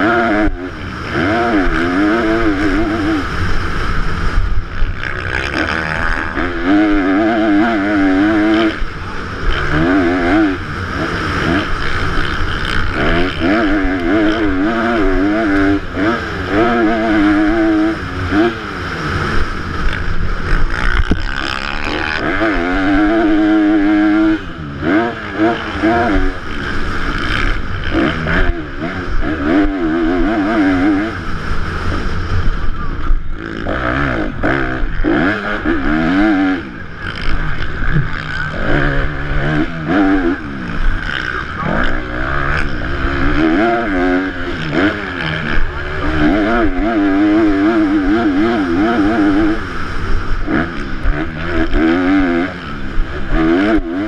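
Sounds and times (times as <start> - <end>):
motorcycle engine revving: 0.0 - 54.0
wind rushing over microphone: 0.0 - 54.0.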